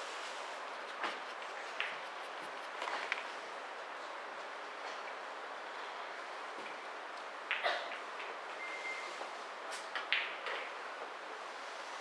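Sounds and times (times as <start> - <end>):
room noise hiss: 0.0 - 7.5, 10.7 - 12.0.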